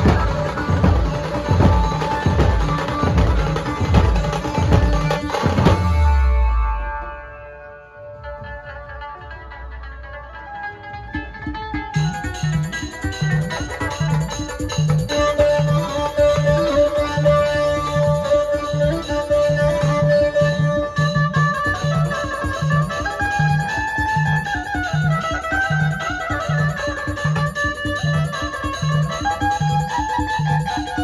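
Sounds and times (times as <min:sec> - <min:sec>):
steady drum beat: 0:00.0 - 0:06.5
plucked string melody: 0:00.0 - 0:31.0.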